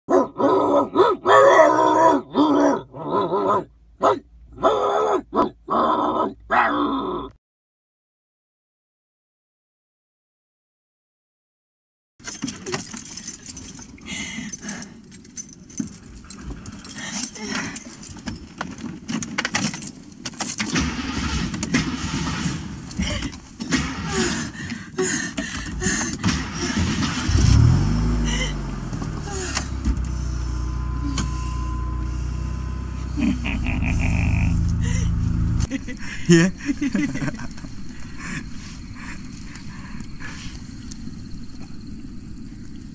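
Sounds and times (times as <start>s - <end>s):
clicks and rattles inside car: 12.2s - 27.3s, 28.8s - 30.2s
vehicle engine idling: 26.2s - 36.3s.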